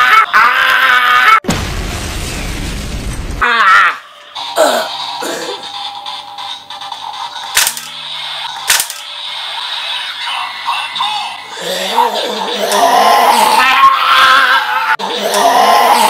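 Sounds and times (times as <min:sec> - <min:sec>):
electronic toy standby music: 0:04.4 - 0:11.6
sharp plastic clicks: 0:07.6 - 0:08.0, 0:08.7 - 0:09.1.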